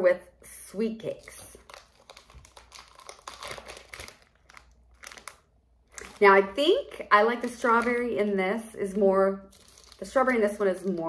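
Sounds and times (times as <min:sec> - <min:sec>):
plastic packaging crinkling: 0:01.2 - 0:08.4, 0:09.4 - 0:11.0.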